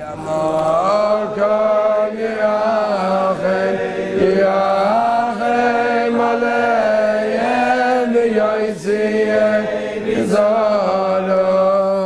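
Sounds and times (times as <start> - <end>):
man singing chant-like: 0.0 - 12.0.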